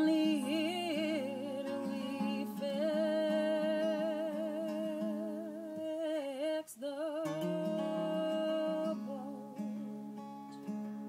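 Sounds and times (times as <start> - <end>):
woman singing wordless notes: 0.0 - 9.8
acoustic guitar: 0.0 - 11.0.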